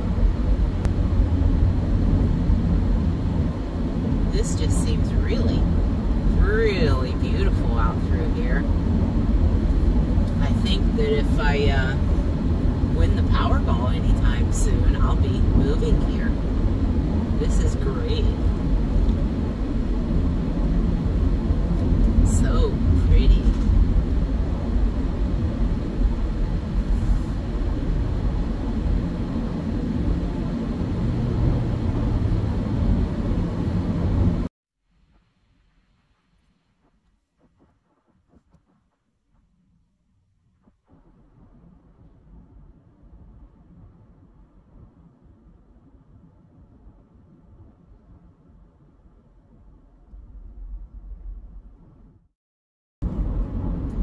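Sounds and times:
road and engine noise in car: 0:00.0 - 0:34.5, 0:53.0 - 0:54.0.

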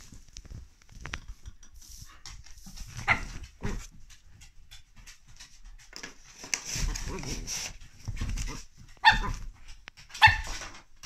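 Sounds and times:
paws rustling on cushion: 0:00.0 - 0:10.0.

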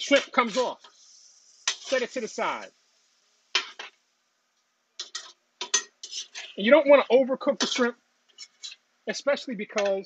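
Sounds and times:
metal spatula scraping griddle: 0:00.0 - 0:02.4, 0:05.0 - 0:06.7, 0:07.6 - 0:08.8.

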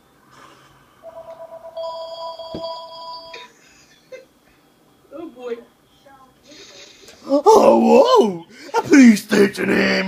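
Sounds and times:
telephone electronic ringing: 0:01.0 - 0:03.5.

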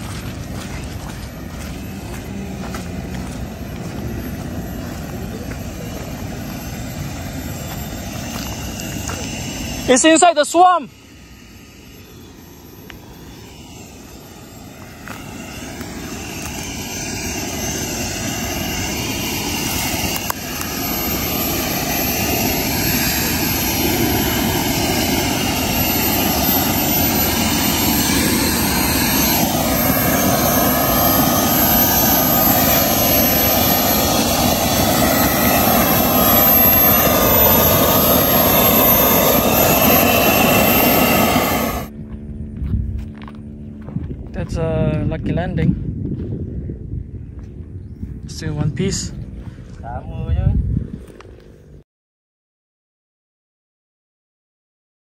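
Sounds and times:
model jet turbine roaring: 0:00.0 - 0:42.5.

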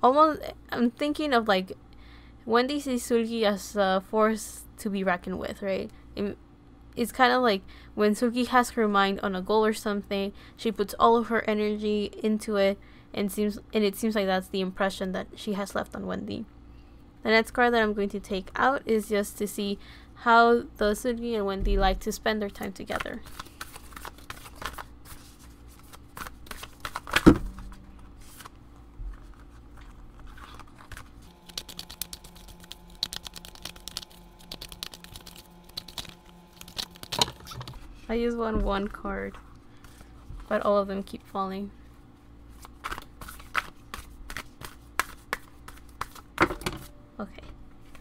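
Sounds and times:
cards shuffling: 0:22.9 - 0:37.9, 0:42.5 - 0:46.3.

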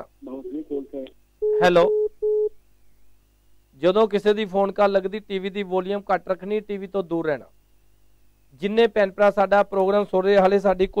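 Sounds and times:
telephone line beeps: 0:01.4 - 0:02.5.

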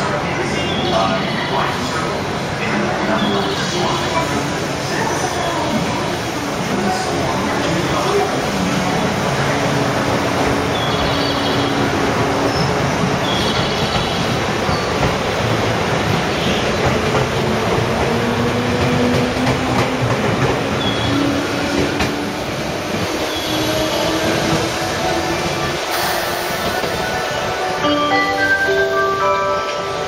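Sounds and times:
electric train rolling: 0:01.5 - 0:30.0.

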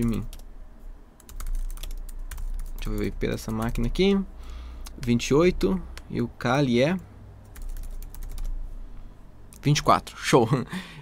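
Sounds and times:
computer keyboard typing: 0:00.0 - 0:00.5, 0:01.2 - 0:04.1, 0:07.4 - 0:08.6.

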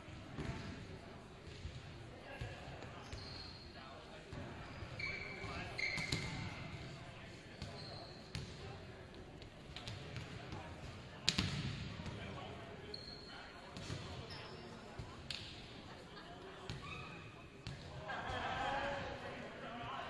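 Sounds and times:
brief high squeaks: 0:04.6 - 0:06.3.

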